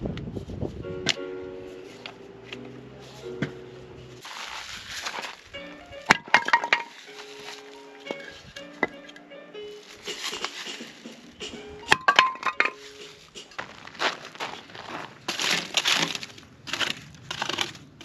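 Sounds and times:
light background music: 0.8s - 13.6s.

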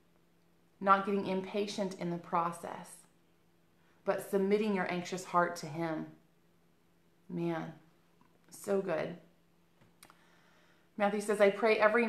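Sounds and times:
woman's voice: 0.8s - 3.1s, 4.0s - 6.2s, 7.3s - 7.9s, 8.5s - 9.3s, 11.0s - 12.0s.

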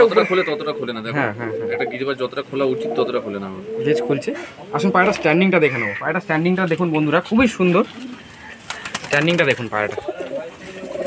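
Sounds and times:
people's voices: 0.0s - 11.0s
pigeons cooing: 0.0s - 11.0s.

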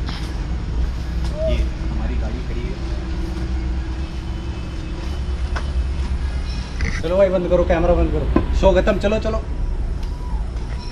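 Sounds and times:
vehicle engine running: 0.0s - 10.9s.

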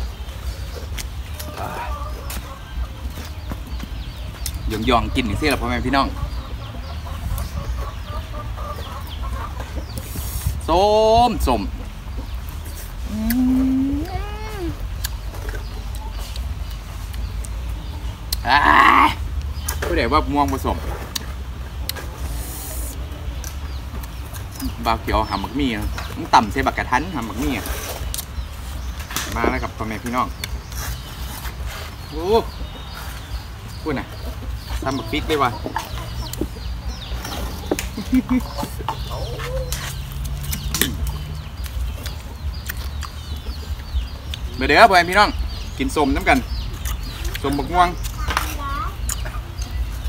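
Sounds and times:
small birds chirping: 0.0s - 50.0s
chickens clucking softly: 0.1s - 10.5s, 31.8s - 50.0s
person speaking: 13.1s - 14.8s.

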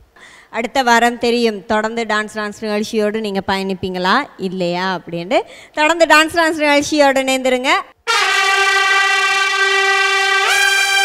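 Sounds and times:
sustained brass chord: 8.1s - 11.0s.

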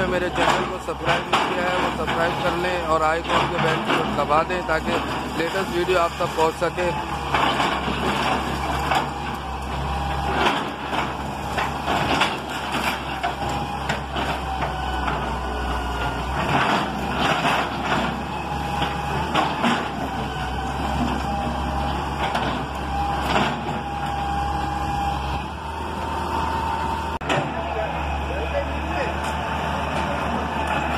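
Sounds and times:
falling masonry crashing: 0.0s - 9.3s
excavator diesel engine running: 0.0s - 30.9s.

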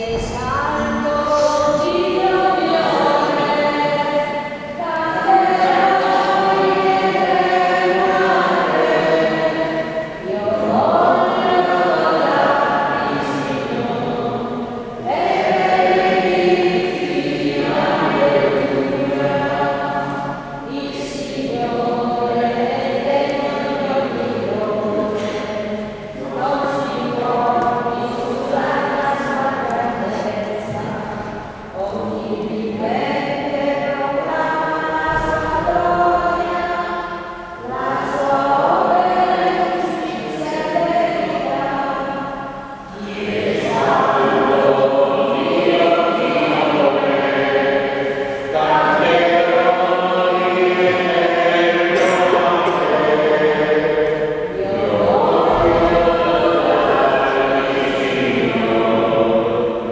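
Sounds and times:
church choir singing a hymn: 0.0s - 59.9s.

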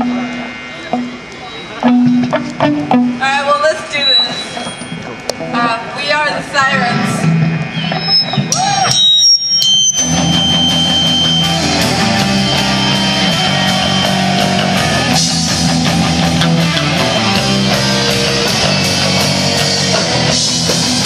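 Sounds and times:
ringing guitar tones: 0.0s - 21.0s
rock band playing: 0.0s - 21.0s.

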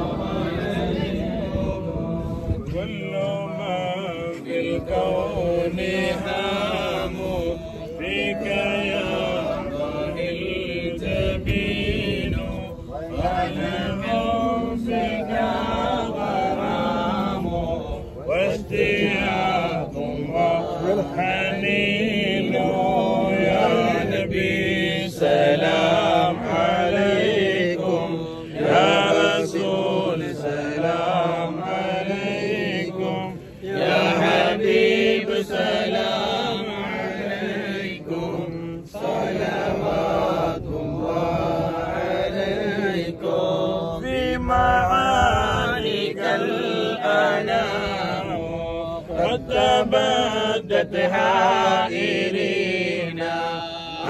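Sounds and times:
men chanting melodic recitation: 0.0s - 54.0s.

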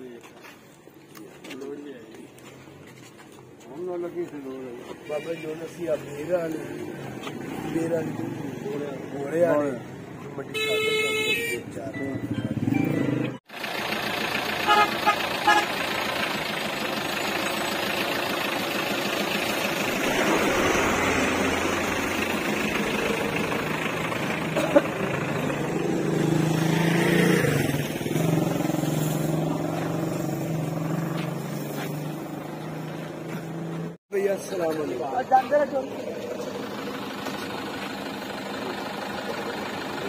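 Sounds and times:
horn toots: 10.5s - 11.7s, 14.6s - 15.8s
vehicle running: 11.8s - 40.0s.

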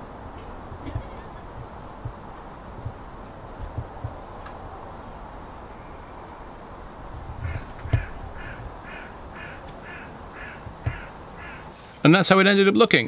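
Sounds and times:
short knocks: 7.4s - 8.8s, 10.6s - 11.1s
crow cawing: 7.4s - 11.8s.

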